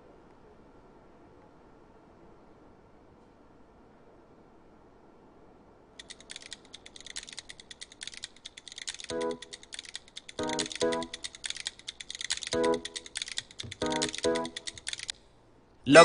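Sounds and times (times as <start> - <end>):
rapid irregular clicks: 6.0 - 15.3.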